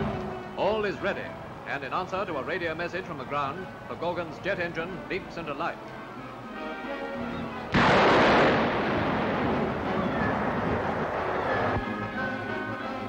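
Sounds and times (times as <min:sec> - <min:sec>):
orchestral music: 0:04.3 - 0:13.0.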